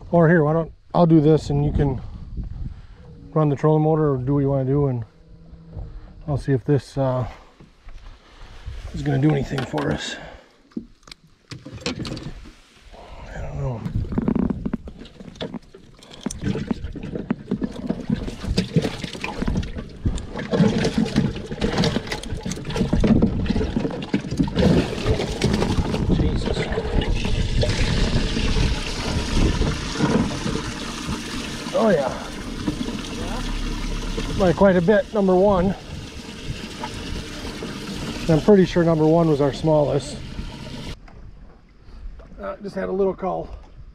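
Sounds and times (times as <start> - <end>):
water running and sloshing: 14.8 - 41.0.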